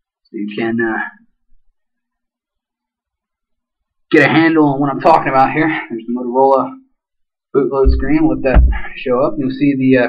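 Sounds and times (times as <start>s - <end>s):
faint low knock: 7.8s - 9.4s.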